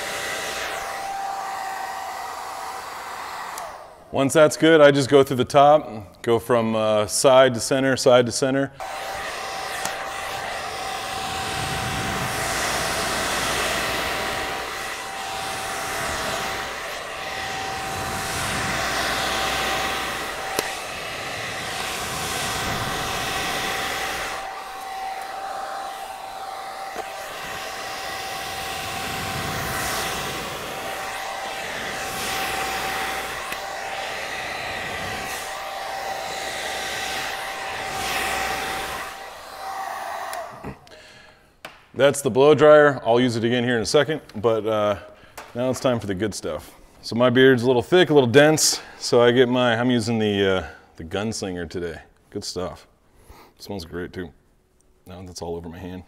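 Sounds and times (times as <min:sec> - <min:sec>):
hair dryer blowing: 0:00.0 - 0:05.1, 0:08.8 - 0:41.7
motor whine: 0:08.8 - 0:40.7.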